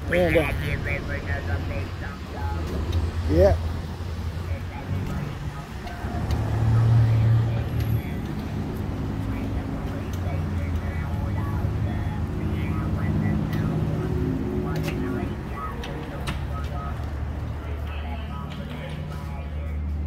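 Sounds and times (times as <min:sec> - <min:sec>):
faint voices: 0:00.0 - 0:20.0
vehicle engine running: 0:00.0 - 0:20.0.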